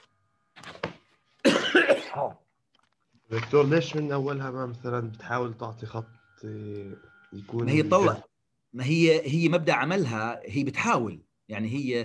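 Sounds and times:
person coughing: 1.4s - 2.4s.

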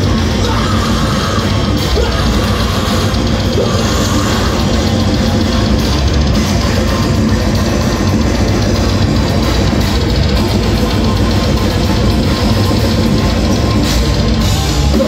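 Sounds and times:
bass guitar: 0.0s - 15.0s
distorted electric guitar: 0.0s - 15.0s
drum kit: 0.0s - 15.0s.

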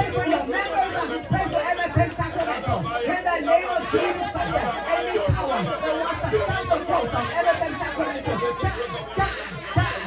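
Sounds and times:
man talking into a microphone: 0.0s - 9.0s.

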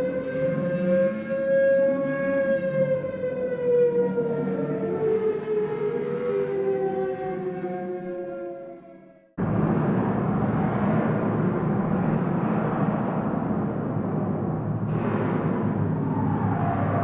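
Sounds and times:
air raid siren wailing: 0.0s - 17.0s.

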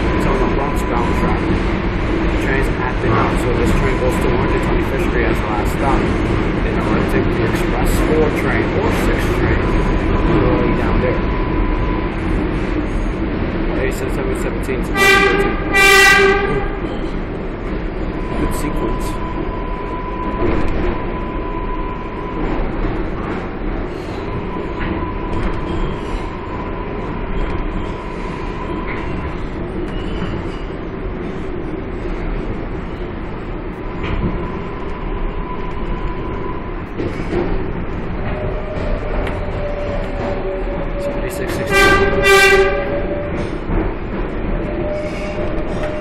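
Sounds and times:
subway car rumble: 0.0s - 46.0s
train running noise: 0.0s - 46.0s
train horn toots: 14.8s - 17.2s, 39.8s - 43.6s.

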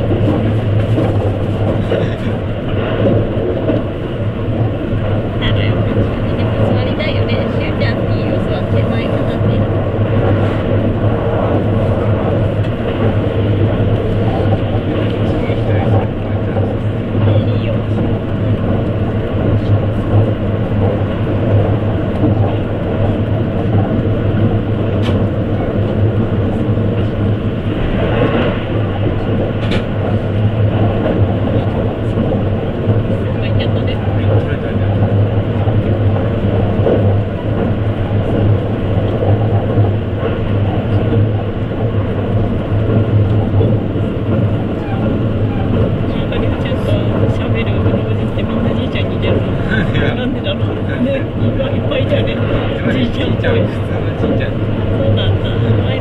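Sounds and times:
constant low hum: 0.0s - 56.0s
train wheels rumbling on rail: 0.0s - 56.0s.

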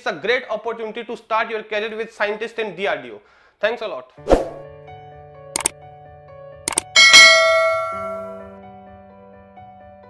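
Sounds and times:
soft background music: 4.2s - 10.0s
bright bell chime: 7.0s - 8.5s.

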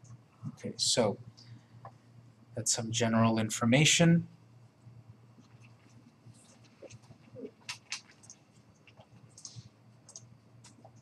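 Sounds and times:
faint hum: 0.0s - 11.0s
computer mouse clicks: 6.4s - 11.0s.

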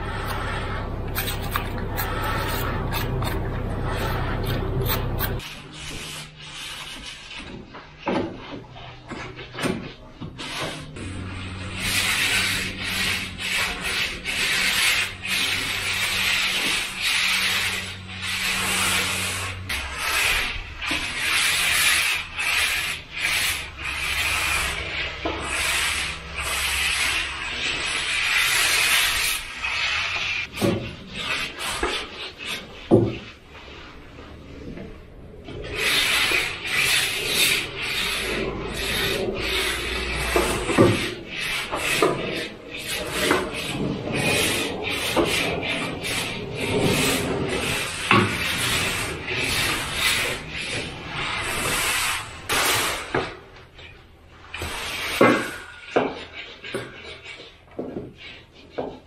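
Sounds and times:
steady low hum: 0.0s - 5.4s
trowel scraping wet concrete: 0.0s - 7.7s, 9.4s - 34.9s, 35.5s - 59.0s.

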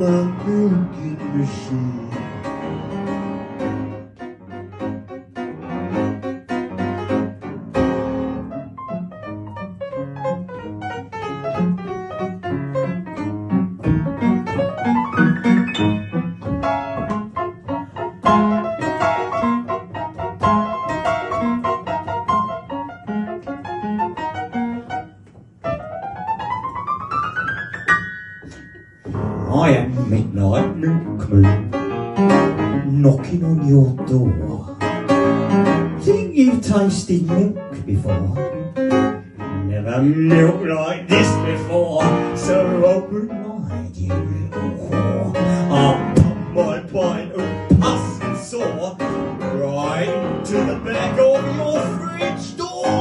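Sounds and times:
upright piano playing: 0.0s - 53.0s.

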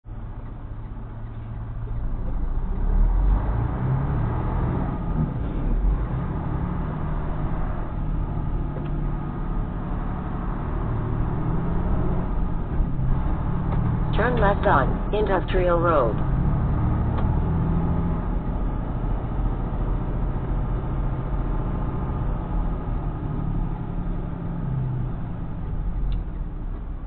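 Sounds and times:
diesel truck engine rumbling: 0.0s - 27.0s.

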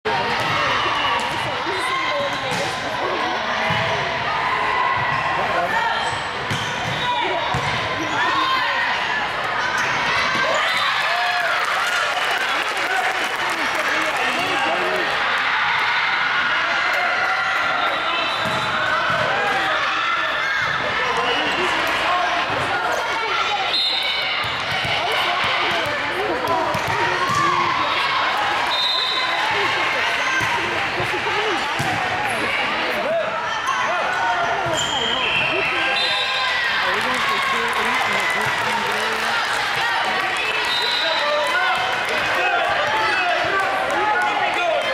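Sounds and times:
sneaker squeaks: 18.2s - 19.2s, 34.6s - 36.4s
volleyballs hit and bouncing: 24.4s - 28.6s, 29.5s - 32.4s.

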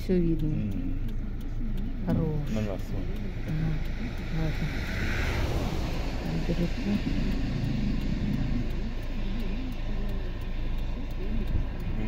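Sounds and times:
people talking quietly: 0.0s - 5.0s, 6.0s - 12.0s
car engine idling: 0.0s - 12.0s.

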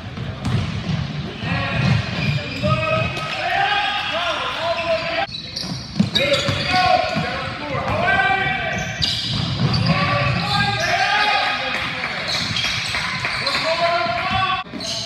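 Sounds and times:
basketball bouncing on hardwood: 0.1s - 1.0s
voices calling out in hall: 1.2s - 15.0s.

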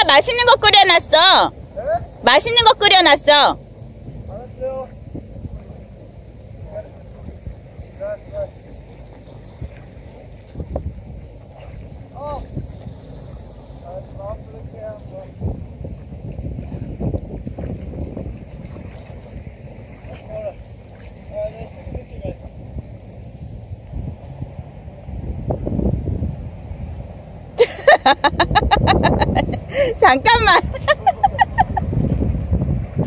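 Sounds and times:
distant voices calling out: 0.0s - 10.5s
kayak paddles splashing: 0.0s - 25.0s
wind on microphone: 0.0s - 33.0s.

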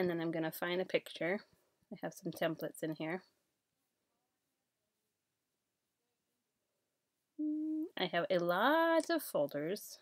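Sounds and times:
woman talking: 0.0s - 3.4s, 7.4s - 10.0s
woman humming: 7.4s - 8.0s.

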